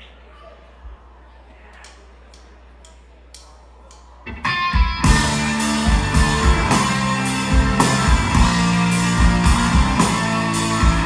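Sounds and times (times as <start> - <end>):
rock band playing: 4.3 - 11.0.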